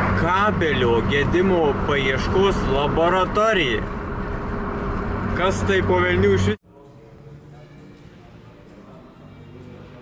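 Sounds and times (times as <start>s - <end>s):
car engine drone: 0.0s - 6.6s
road noise inside car: 0.0s - 6.6s.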